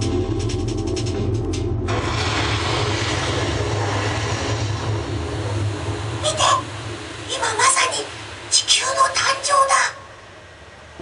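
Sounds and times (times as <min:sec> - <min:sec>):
music: 0:00.0 - 0:05.5
rushing roar with deep rumble: 0:00.0 - 0:09.2.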